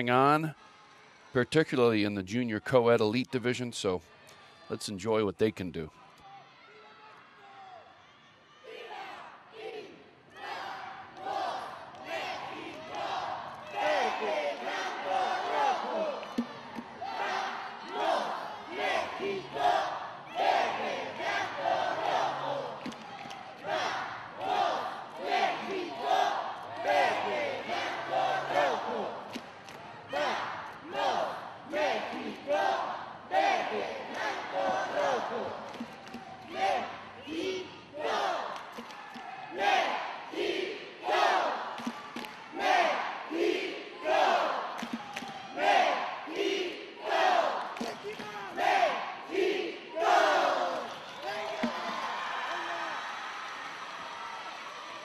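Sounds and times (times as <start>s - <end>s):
arena crowd noise: 0.0s - 55.0s
cheerleaders chanting in unison: 8.4s - 55.0s.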